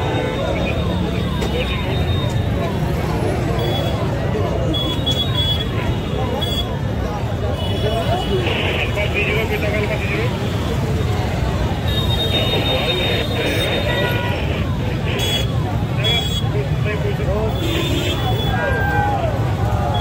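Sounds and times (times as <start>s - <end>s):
car and motorcycle engines: 0.0s - 4.9s
crowd talking and shouting: 0.0s - 20.0s.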